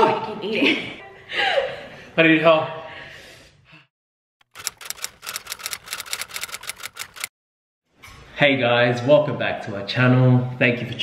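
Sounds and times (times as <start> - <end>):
rapid typewriter-like clicking: 4.4 - 7.3.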